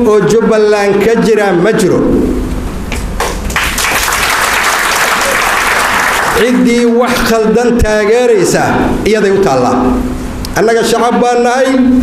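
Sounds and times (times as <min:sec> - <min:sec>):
single claps: 0:02.9 - 0:06.4
audience applause: 0:03.5 - 0:06.4.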